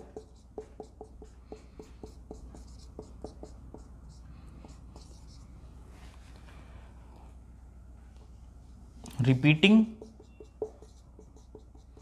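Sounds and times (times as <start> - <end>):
marker pen squeaking on whiteboard: 9.8 - 12.0.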